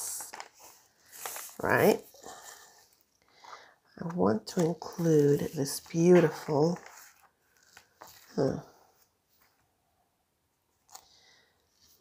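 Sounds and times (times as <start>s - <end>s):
paper rustling: 0.0s - 9.7s.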